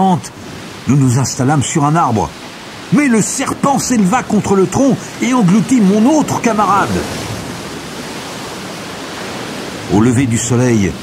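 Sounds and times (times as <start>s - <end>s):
steady rushing noise: 0.2s - 11.0s.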